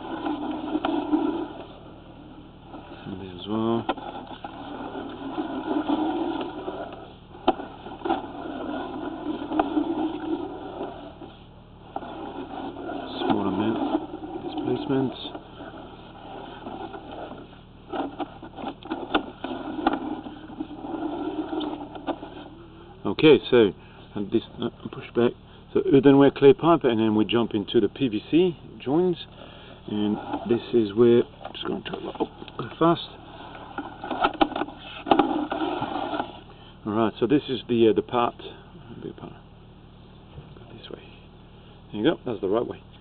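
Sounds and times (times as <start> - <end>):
camera rod scraping and knocking: 0.0 - 1.8, 3.8 - 22.6, 30.1 - 30.6, 33.3 - 36.4
steady low hum: 0.0 - 43.0.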